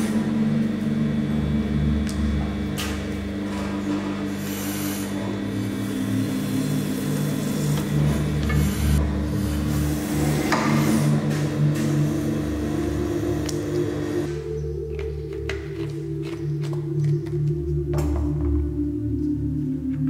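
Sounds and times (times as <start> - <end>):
machine motor hum: 0.0 - 20.0
background music: 5.4 - 20.0.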